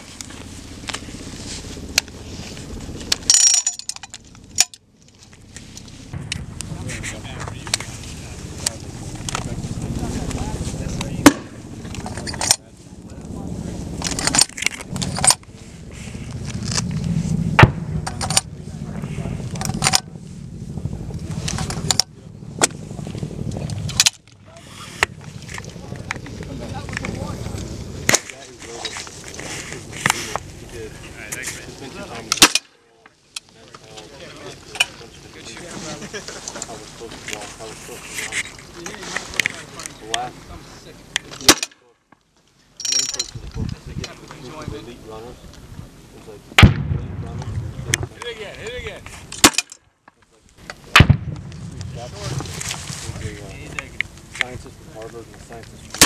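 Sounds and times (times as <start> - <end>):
low wind rumble: 0.0 - 32.4, 43.1 - 56.0.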